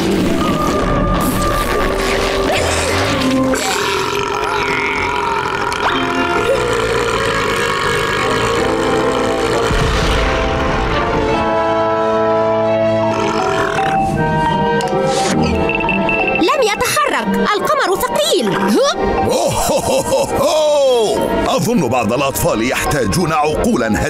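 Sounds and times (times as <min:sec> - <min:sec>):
background music: 0:00.0 - 0:24.0
cartoon burp: 0:01.6 - 0:10.4, 0:13.0 - 0:14.0, 0:15.2 - 0:15.7.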